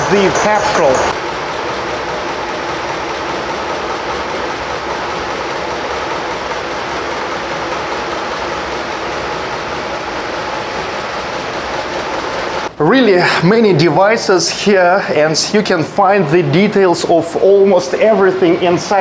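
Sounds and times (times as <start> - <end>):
single-cylinder engine running: 0.0 - 12.7
rapid even ticking: 0.1 - 12.7.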